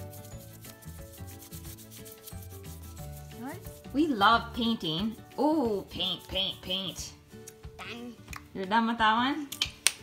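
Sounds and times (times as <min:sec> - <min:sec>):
paintbrush scrubbing on paper: 0:00.0 - 0:06.9
background music: 0:00.0 - 0:10.0.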